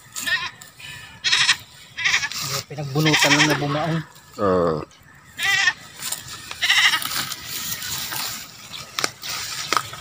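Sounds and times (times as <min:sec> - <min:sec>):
goat bleating: 0:00.1 - 0:04.0, 0:05.3 - 0:07.4.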